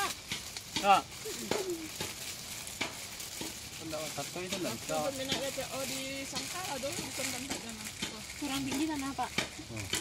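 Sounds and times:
hands scraping soil and leaves: 0.0 - 10.0.

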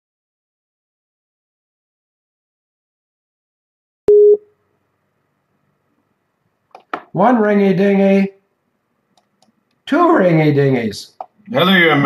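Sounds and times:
short electronic beep: 4.1 - 4.4.

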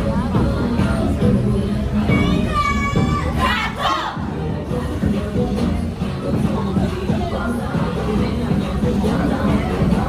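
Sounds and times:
pop dance track: 0.0 - 10.0
voices shouting together: 2.1 - 4.4.

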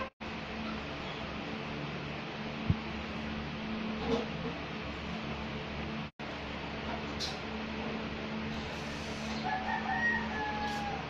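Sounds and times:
steady background hum: 0.0 - 11.0
rooster crowing: 9.4 - 11.0.

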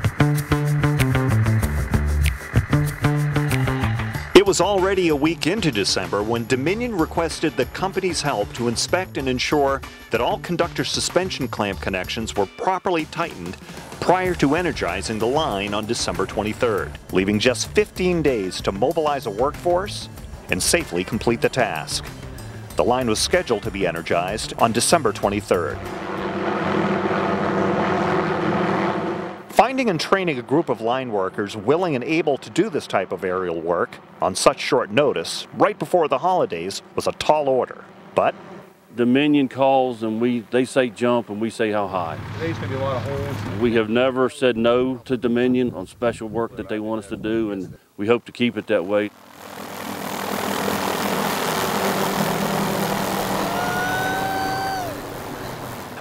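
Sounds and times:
helicopter rotor and engine drone: 20.1 - 29.5, 30.1 - 38.8, 48.9 - 56.0
held high tone: 53.2 - 55.6.

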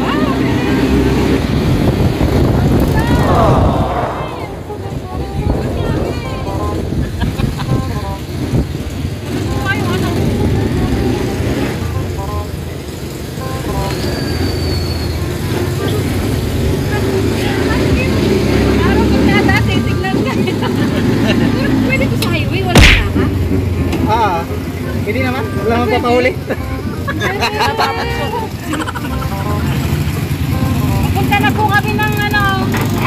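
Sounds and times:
road noise: 0.0 - 33.0
vehicle engine running: 4.5 - 14.6
sharp thump: 22.8 - 23.4.

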